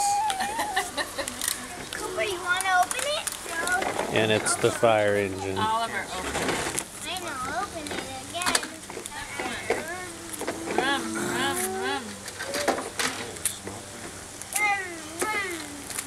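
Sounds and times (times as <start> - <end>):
voices of children and adults: 0.0 - 16.0.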